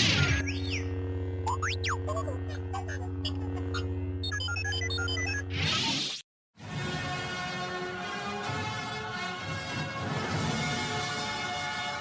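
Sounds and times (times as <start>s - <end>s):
low electric hum: 0.0s - 4.3s.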